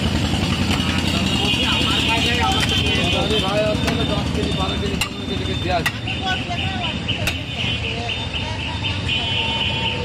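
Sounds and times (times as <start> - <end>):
engine idling: 0.0 - 9.9.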